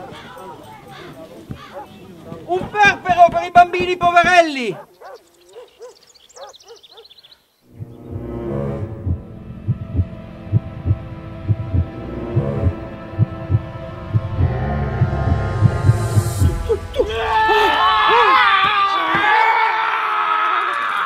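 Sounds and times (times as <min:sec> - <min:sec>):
sustained chord: 0:07.7 - 0:17.8
low thumping beat: 0:07.7 - 0:18.3.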